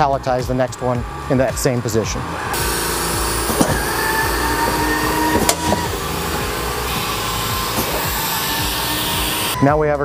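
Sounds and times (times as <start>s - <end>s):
robot arm mechanical hum: 2.2s - 9.6s
thin motor whine: 2.2s - 9.6s.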